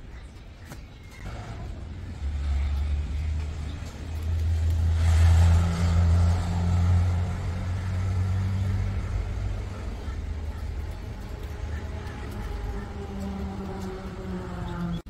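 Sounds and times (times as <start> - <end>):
vehicle engine rumbling past: 1.2 - 15.0.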